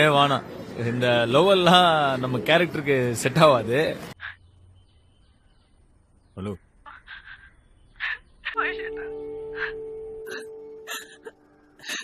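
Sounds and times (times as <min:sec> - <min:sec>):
held music note: 0:08.8 - 0:11.8.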